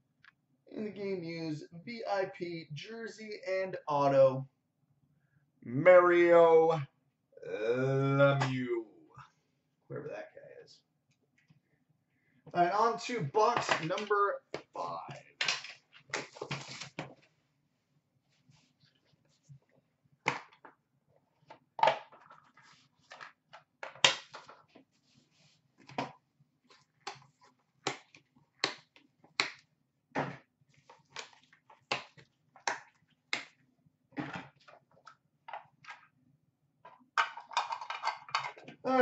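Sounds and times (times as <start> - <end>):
wrapping and cardboard rustling: 15.8 - 17.3.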